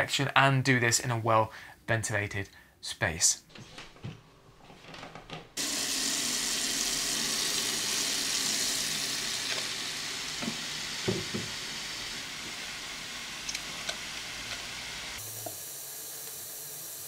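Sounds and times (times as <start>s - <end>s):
tap water running into a tub: 5.6s - 17.0s.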